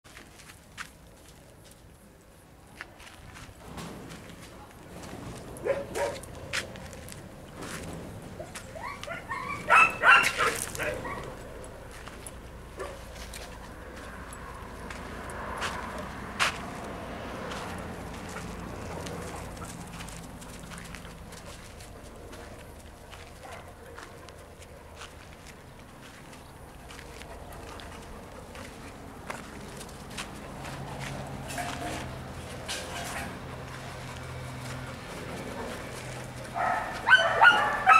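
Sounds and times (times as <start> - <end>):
dog barking: 5.6 - 6.3, 8.8 - 11.4, 12.8 - 13.1, 23.4 - 24.0, 36.5 - 37.9.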